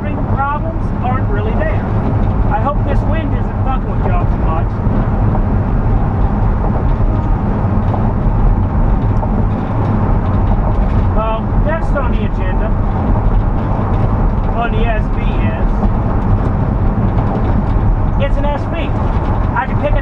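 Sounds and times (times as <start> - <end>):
tyre and road noise: 0.0 - 20.0
van engine hum: 0.0 - 20.0
person's voice: 11.2 - 12.7, 14.5 - 15.8, 18.2 - 18.9, 19.6 - 20.0.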